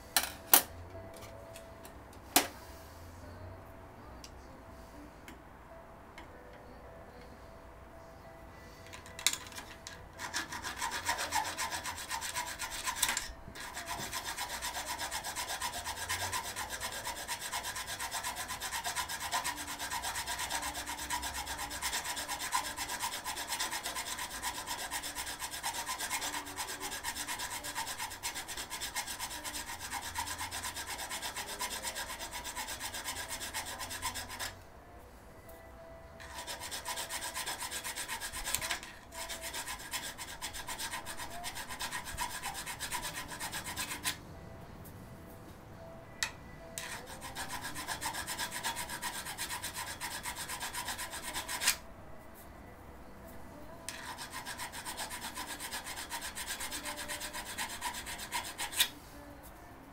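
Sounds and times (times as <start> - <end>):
hand file rasping on metal: 10.2 - 34.6, 36.2 - 44.2, 46.8 - 51.8, 53.9 - 58.9.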